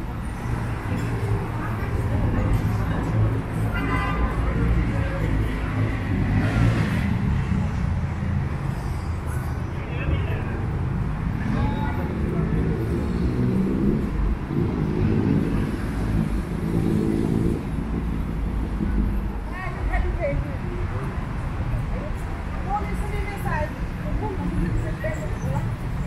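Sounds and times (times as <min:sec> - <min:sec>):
steady traffic noise: 0:00.0 - 0:26.0
people talking indistinctly: 0:19.4 - 0:26.0.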